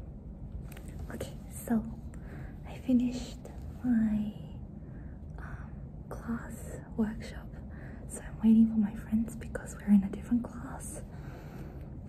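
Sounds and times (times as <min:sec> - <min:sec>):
woman whispering: 0:00.9 - 0:04.6, 0:05.3 - 0:11.2.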